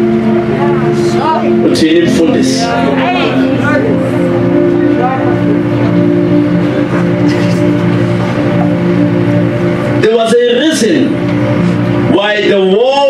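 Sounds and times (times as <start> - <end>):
keyboard chord droning: 0.0 - 13.0.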